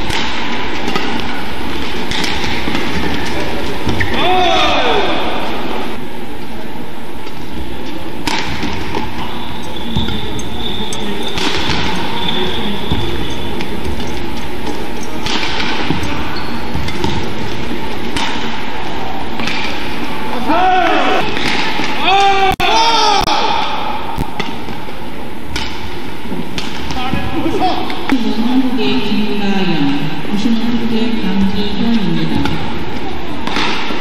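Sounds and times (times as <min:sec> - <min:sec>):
racket hitting shuttlecock: 0:00.0 - 0:05.2, 0:08.2 - 0:09.2, 0:11.2 - 0:12.3, 0:14.6 - 0:17.4, 0:18.0 - 0:18.7, 0:19.4 - 0:19.9, 0:21.2 - 0:27.0, 0:33.4 - 0:34.0
arena crowd noise: 0:00.0 - 0:34.0
shoes squeaking on court: 0:00.9 - 0:04.3, 0:08.7 - 0:18.2.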